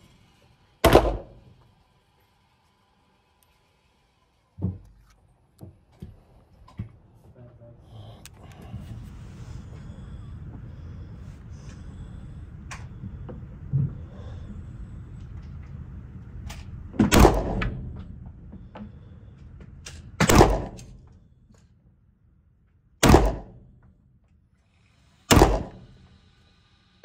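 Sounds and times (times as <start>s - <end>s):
pistol shots echoing indoors: 17.1s - 17.7s, 20.2s - 20.9s, 23.0s - 23.6s, 25.3s - 25.8s.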